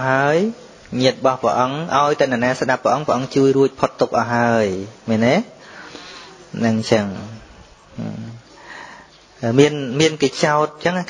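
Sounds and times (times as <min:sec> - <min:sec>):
man preaching: 0:00.0 - 0:05.6, 0:06.5 - 0:08.4, 0:09.4 - 0:11.0
steady hiss: 0:00.0 - 0:11.0.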